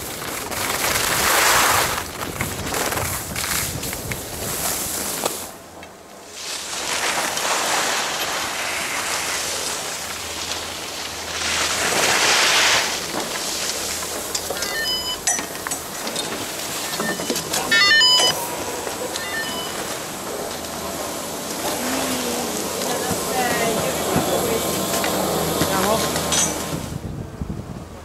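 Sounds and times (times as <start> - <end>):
skis scraping over snow: 0.0 - 5.6, 6.2 - 14.6, 15.9 - 27.0
ski skid stop hiss: 0.7 - 5.5, 6.3 - 14.1
metallic clinks of poles and gates: 14.3 - 18.4, 26.3 - 26.7.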